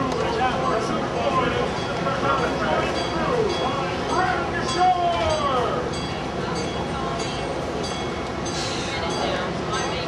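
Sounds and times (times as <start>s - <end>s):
people's voices: 0.0s - 10.0s.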